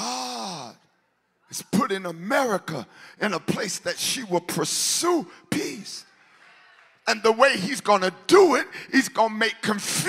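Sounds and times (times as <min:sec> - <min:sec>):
man speaking: 0:01.5 - 0:06.0, 0:07.1 - 0:10.0.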